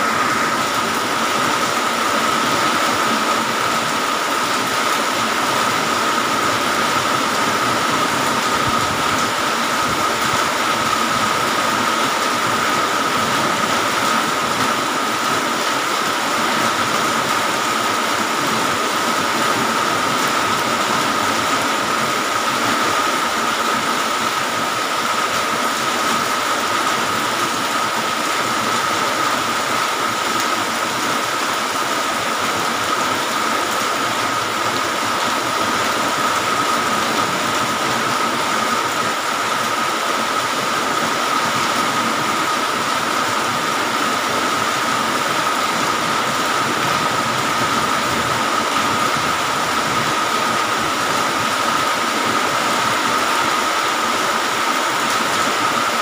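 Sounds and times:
heavy rain falling: 0.0s - 56.0s.

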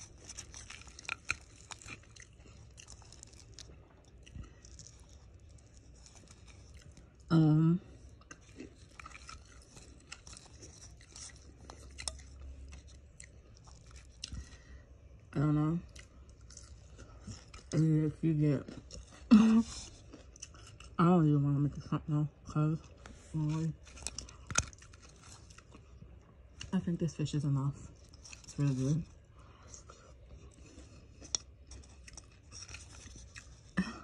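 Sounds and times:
person chewing crunchy food: 0.0s - 21.0s, 22.8s - 26.8s, 27.8s - 34.0s.

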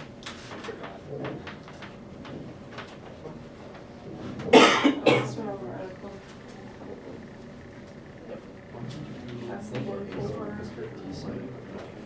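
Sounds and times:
person coughing: 4.5s - 5.4s.

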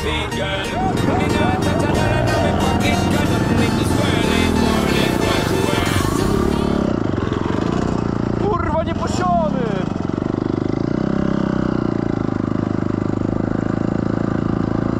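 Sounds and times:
dirt bike engine running: 0.0s - 14.9s.

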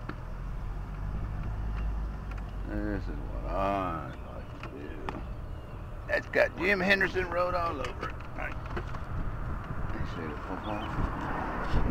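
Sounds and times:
vehicle engine idling hum: 0.0s - 11.9s.

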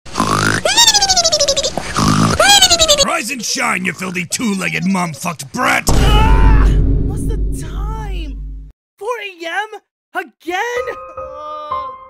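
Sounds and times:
rasping cartoon snore: 0.1s - 0.6s, 1.9s - 2.4s.

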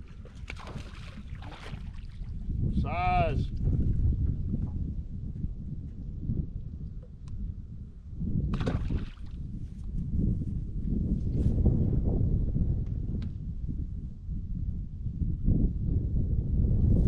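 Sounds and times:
water lapping around boat: 0.0s - 2.6s, 8.5s - 9.4s
wind rumbling on microphone: 0.0s - 17.0s.

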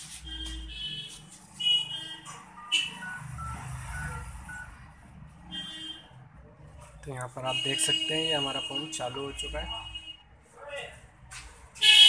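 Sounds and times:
faint high beeps: 2.6s - 4.7s.

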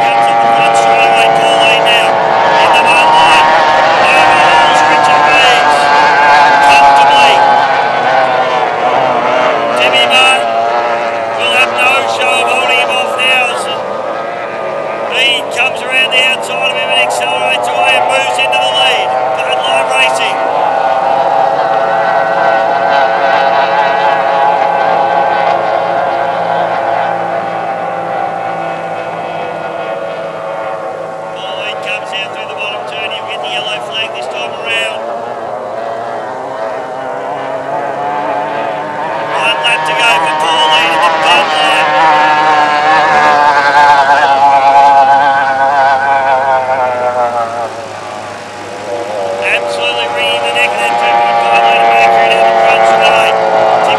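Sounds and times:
racing outboard motors passing: 0.0s - 53.9s.

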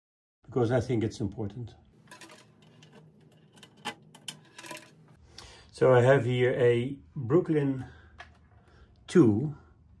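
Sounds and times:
small metal handling sounds: 2.0s - 5.2s.

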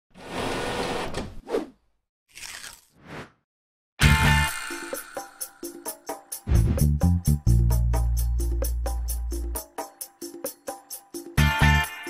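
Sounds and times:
sheet being ripped: 2.3s - 3.0s.

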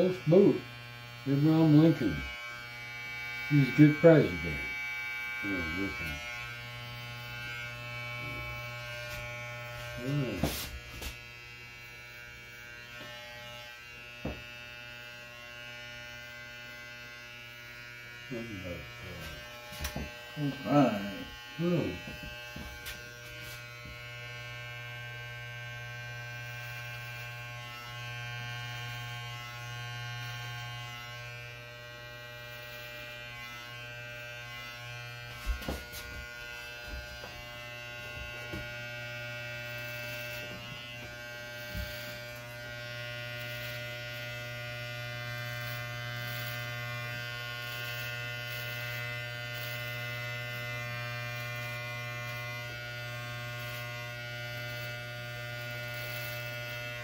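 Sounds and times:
electric hair clippers buzzing: 0.0s - 57.0s
person speaking: 1.2s - 2.3s, 3.5s - 4.7s, 5.4s - 6.3s, 10.0s - 10.6s, 20.4s - 22.1s.

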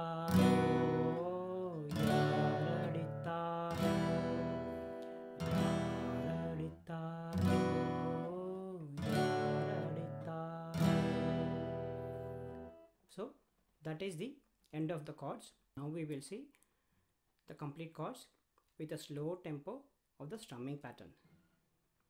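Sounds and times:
man singing: 0.0s - 12.3s
acoustic guitar strumming chords: 0.0s - 12.8s.

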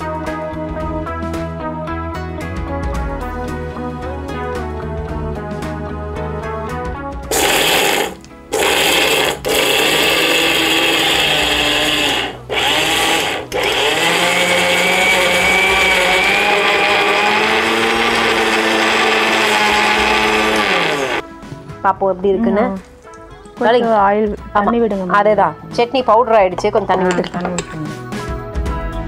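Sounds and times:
mixer grinder grinding: 7.3s - 21.2s.

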